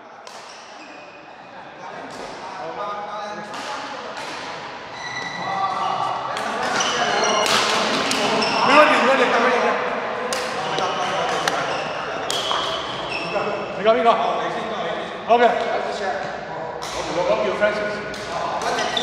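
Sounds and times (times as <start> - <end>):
rackets hitting shuttlecock: 0.2 - 0.7, 3.4 - 4.7, 6.3 - 8.4, 10.3 - 13.0
shoes squeaking on court floor: 4.2 - 8.8, 10.5 - 13.8, 18.2 - 19.0.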